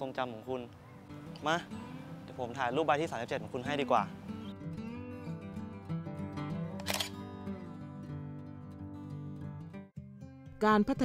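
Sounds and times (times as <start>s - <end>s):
background music: 0.0s - 11.0s
camera shutter click: 6.8s - 7.2s.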